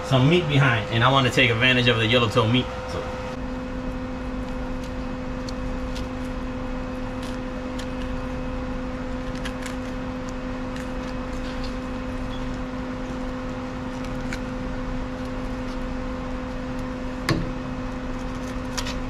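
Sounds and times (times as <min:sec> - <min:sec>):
low machine hum: 0:00.0 - 0:19.0.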